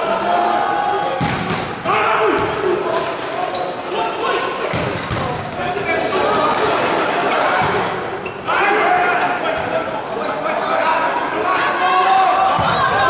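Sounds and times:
players shouting and chatting: 0.0 - 13.0
volleyball smacks: 1.2 - 1.8.

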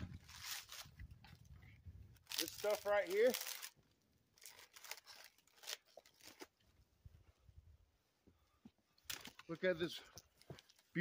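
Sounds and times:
dry bark rustling: 0.0 - 6.9.

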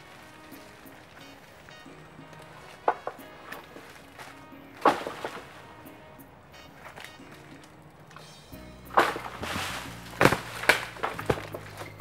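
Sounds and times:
background music: 0.0 - 12.0
fronds rustling: 0.0 - 12.0
pole knocking coconut tree: 4.8 - 5.6, 8.9 - 12.0.

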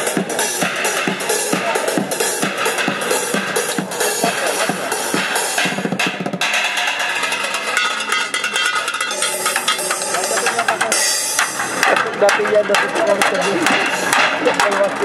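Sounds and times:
drumming on pots and scrap: 0.0 - 15.0
electronic dance beat: 0.0 - 15.0.

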